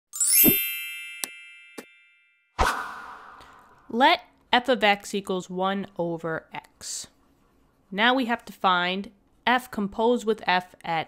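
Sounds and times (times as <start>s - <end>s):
bright ringing chime: 0.2s - 2.6s.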